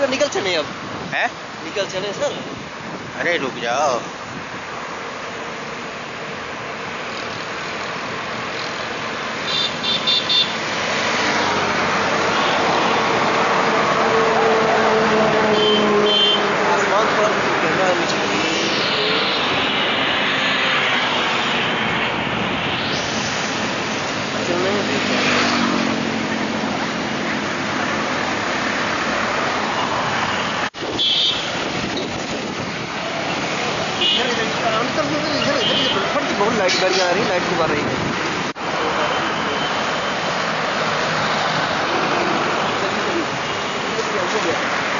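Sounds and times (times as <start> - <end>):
tyres hissing on wet road: 0.0 - 44.9
vehicle engines humming: 0.0 - 44.9.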